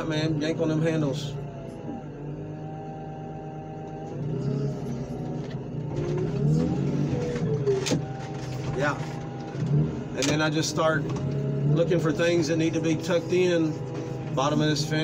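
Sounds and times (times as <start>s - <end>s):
car crusher engine and hydraulic pump: 0.0s - 15.0s.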